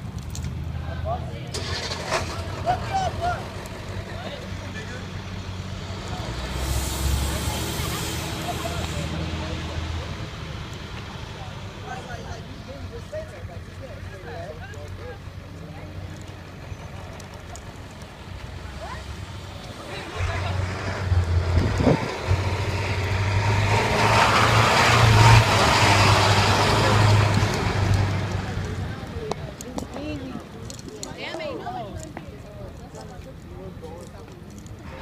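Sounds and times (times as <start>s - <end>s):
bus diesel engines running: 0.0s - 35.0s
air brake release hiss: 6.5s - 9.0s.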